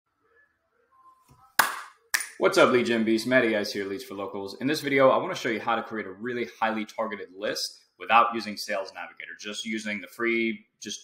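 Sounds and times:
sharp hand clap: 0:01.6 - 0:02.4.

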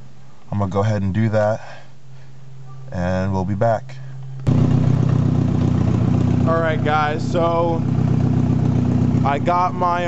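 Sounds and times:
low steady hum: 0:00.0 - 0:10.0
car engine idling: 0:03.4 - 0:10.0.

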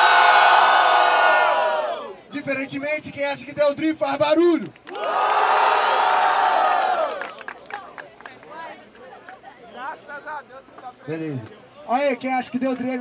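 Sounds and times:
crowd cheering and shouting: 0:00.0 - 0:02.2, 0:04.9 - 0:07.4
scattered voices and chatter: 0:07.5 - 0:13.0.

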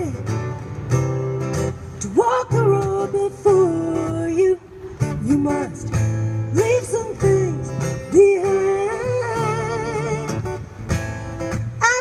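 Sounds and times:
acoustic guitar strumming: 0:00.0 - 0:12.0
woman singing: 0:02.0 - 0:10.4, 0:11.8 - 0:12.0.

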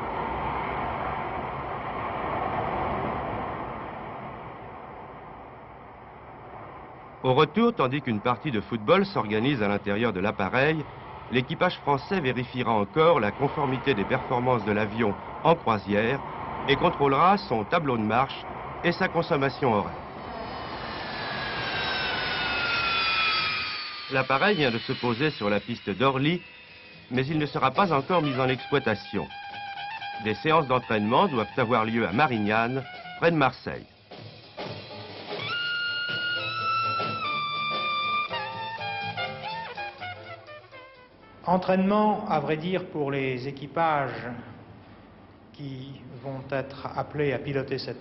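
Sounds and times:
jet engines rushing in flight: 0:00.0 - 0:40.6.

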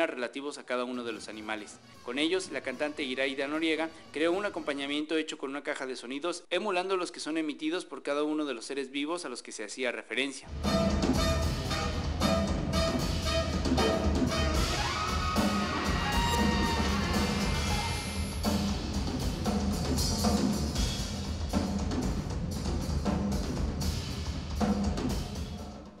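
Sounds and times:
jazz-rock band playing live: 0:10.5 - 0:25.2.

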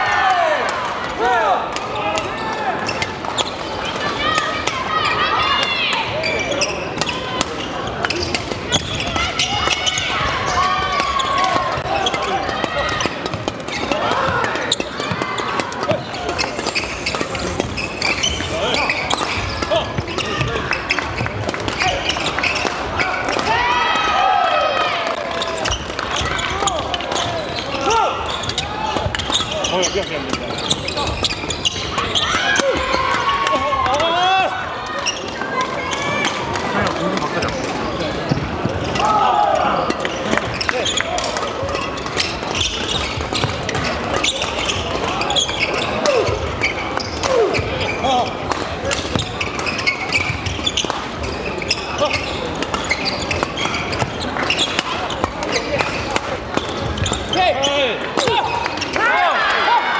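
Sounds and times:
hubbub of voices: 0:00.0 - 0:59.9
shoes squeaking on wooden floor: 0:02.8 - 0:23.4, 0:25.1 - 0:33.7, 0:34.8 - 0:39.2, 0:39.8 - 0:59.1
rackets hitting shuttlecocks: 0:48.4 - 0:51.6.

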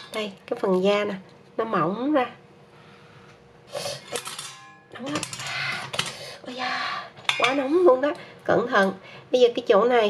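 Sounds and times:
metal utensils clinking on pan: 0:04.1 - 0:06.1, 0:07.3 - 0:07.6
short metallic ring: 0:04.2 - 0:04.9.

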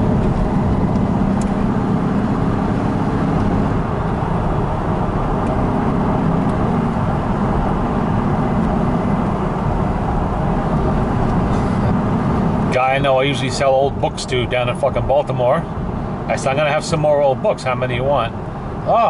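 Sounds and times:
car engine rumble: 0:00.0 - 0:19.0
road noise inside car: 0:00.0 - 0:19.0.

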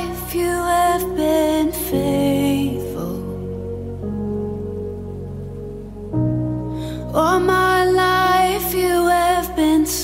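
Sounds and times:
soft sustained chords music: 0:00.0 - 0:10.0.

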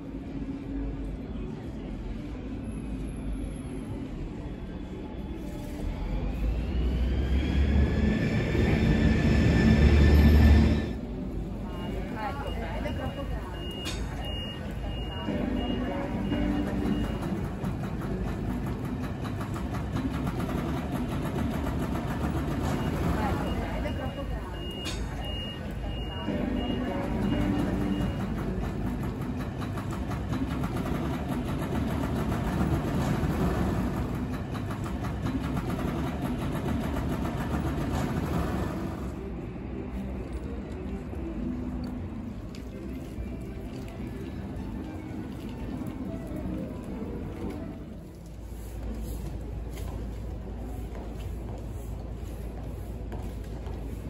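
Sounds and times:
low traffic rumble: 0:00.0 - 0:53.9
indistinct voices of passers-by: 0:00.0 - 0:54.0.

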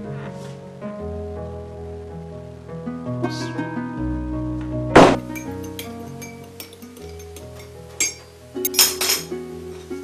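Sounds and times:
background music: 0:00.0 - 0:10.0
teaspoon clinking against teacup: 0:05.3 - 0:09.3.

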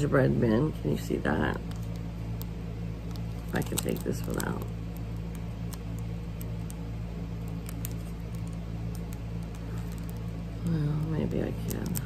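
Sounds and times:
steady low hum: 0:00.0 - 0:12.0
plastic packet crinkling: 0:01.6 - 0:12.0.

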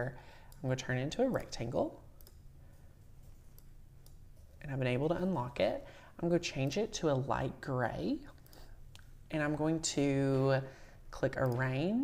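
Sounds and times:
low steady hum: 0:00.0 - 0:12.0
computer mouse clicks: 0:02.2 - 0:04.2, 0:08.3 - 0:09.1.

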